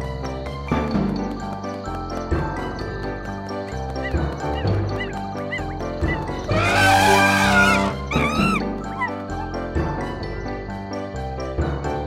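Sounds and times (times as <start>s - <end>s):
cheerful cartoon music: 0.0s - 12.0s
cartoon elephant trumpet call: 6.5s - 8.6s.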